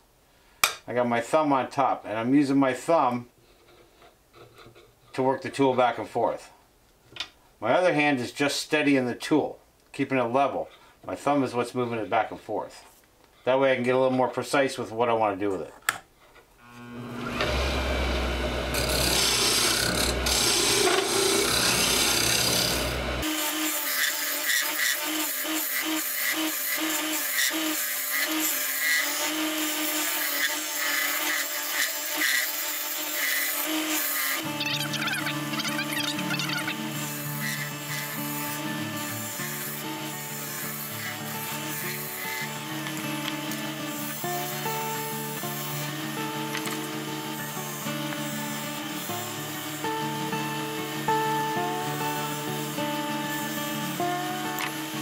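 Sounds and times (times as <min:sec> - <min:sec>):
wood lathe spinning: 0:16.6 - 0:50.2
turning tool scraping wood: 0:16.7 - 0:45.0.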